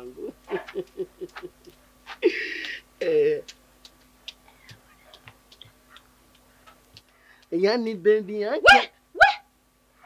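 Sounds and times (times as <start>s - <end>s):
person's vocal exclamation: 3.0s - 3.5s
faint small clicks and taps: 3.4s - 7.5s.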